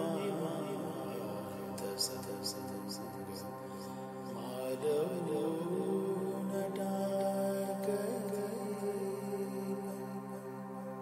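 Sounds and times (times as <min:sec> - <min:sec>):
person singing wordless melody: 0:00.0 - 0:11.0.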